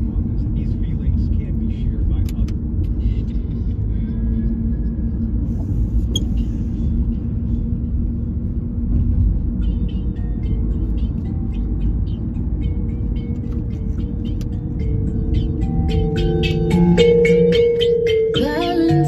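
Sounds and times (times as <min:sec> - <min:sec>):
car engine and road rumble: 0:00.0 - 0:19.0
music with held notes: 0:09.7 - 0:19.0.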